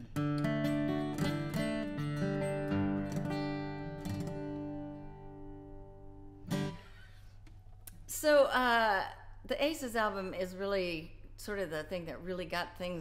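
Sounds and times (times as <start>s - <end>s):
acoustic guitar chords: 0.0s - 8.1s.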